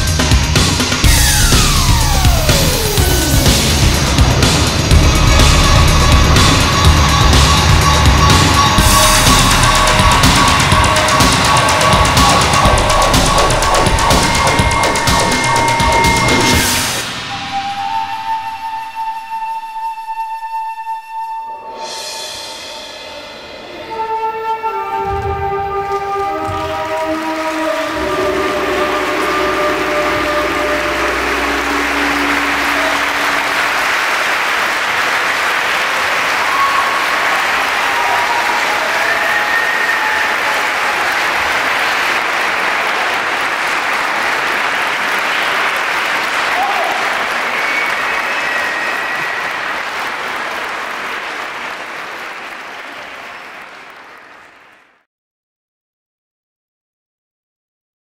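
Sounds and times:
closing music long held notes: 0.0s - 34.8s
audience applause: 0.6s - 17.0s, 25.8s - 55.0s.

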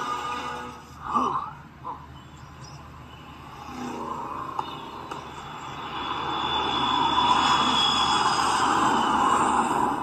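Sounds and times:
steady rushing noise: 2.8s - 10.0s
thin high whistle: 5.7s - 9.9s.

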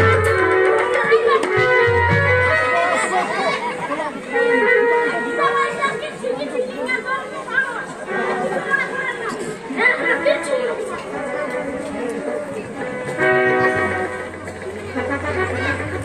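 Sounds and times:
several voices talking: 0.3s - 16.0s.

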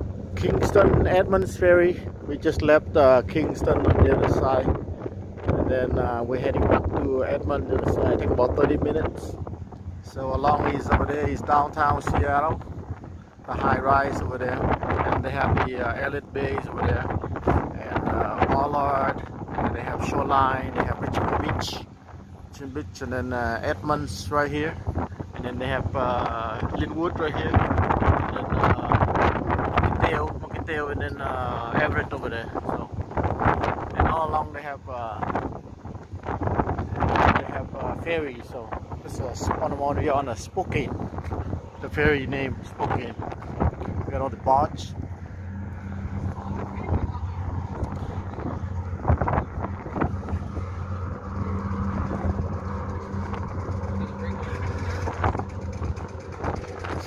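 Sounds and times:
ferry engines droning: 0.0s - 57.0s
wind buffeting microphone: 0.0s - 57.0s.

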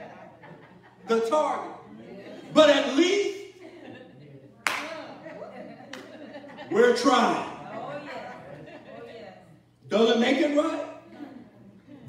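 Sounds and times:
sharp hand clap: 4.6s - 5.0s.

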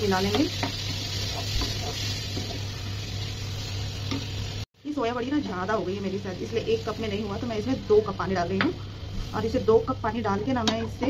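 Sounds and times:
curry sizzling in a pan: 0.0s - 11.0s
spatula scraping a pan: 0.3s - 2.7s.

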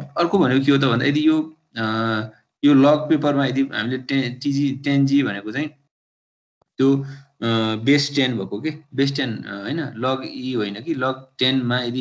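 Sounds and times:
man speaking: 0.0s - 5.8s, 6.8s - 12.0s.

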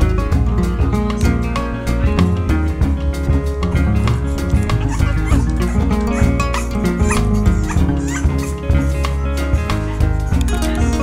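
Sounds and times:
background music: 0.0s - 11.0s
puppy whimpering and yelping: 4.0s - 9.2s.

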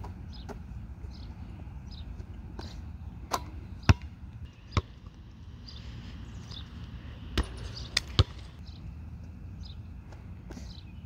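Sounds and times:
ball bouncing on asphalt: 3.3s - 5.2s, 7.3s - 8.7s
basketball hitting hoop: 7.3s - 8.5s.

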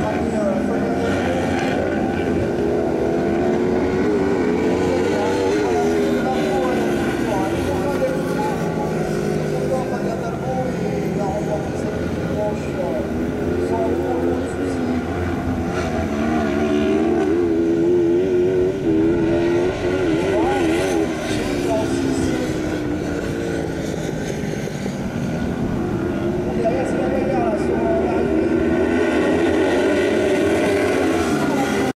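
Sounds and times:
buggy engines revving: 0.0s - 31.9s.

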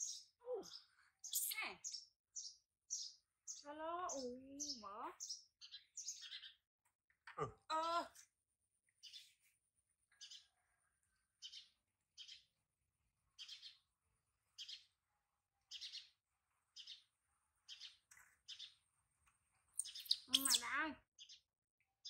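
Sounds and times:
baby monkey squeaking: 19.8s - 20.8s
monkey wavering cry: 19.9s - 20.7s.

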